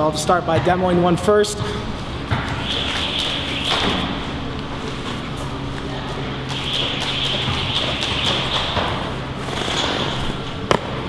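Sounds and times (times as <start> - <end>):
low hum: 1.6 - 11.0.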